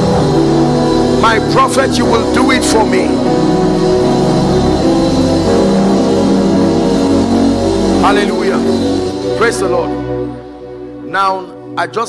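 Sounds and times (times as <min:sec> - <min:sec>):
music with held chords and bass: 0:00.0 - 0:12.0.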